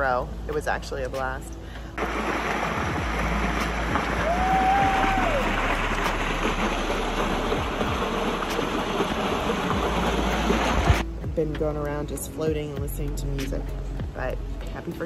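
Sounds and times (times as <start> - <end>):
water rushing down a slide: 2.0 - 11.0.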